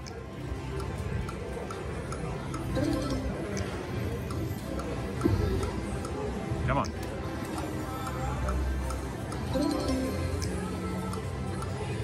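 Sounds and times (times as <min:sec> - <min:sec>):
busy casino background: 0:00.0 - 0:12.0
slot machine reels ticking: 0:00.8 - 0:05.0, 0:07.5 - 0:11.8
slot machine chimes: 0:02.6 - 0:03.6, 0:09.4 - 0:10.4.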